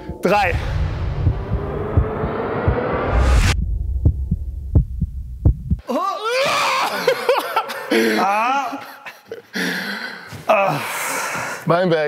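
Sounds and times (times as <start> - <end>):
heartbeat effect: 0.0 - 5.8
low thumping: 0.1 - 5.8
rising noise swell: 0.3 - 5.8.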